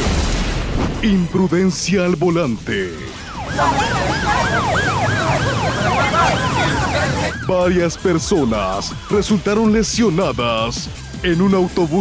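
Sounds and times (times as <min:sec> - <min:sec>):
street noise: 0:00.7 - 0:12.0
siren yelping: 0:02.8 - 0:09.8.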